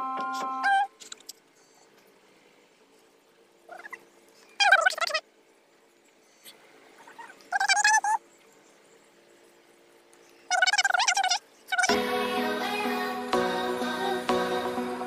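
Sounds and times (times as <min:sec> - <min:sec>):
faint steady hum: 0:00.0 - 0:15.0
wavering animal-like calls: 0:03.6 - 0:05.3, 0:06.2 - 0:08.3, 0:10.4 - 0:12.8.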